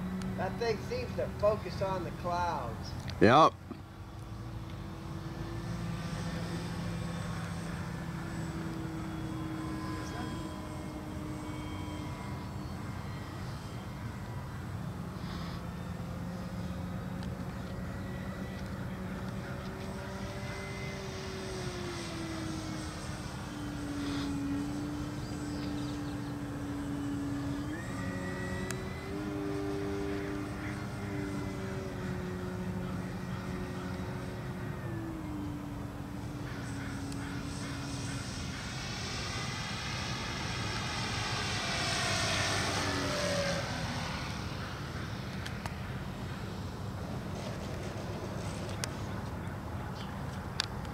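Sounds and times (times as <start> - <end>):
model biplane motor droning: 0.0 - 50.9.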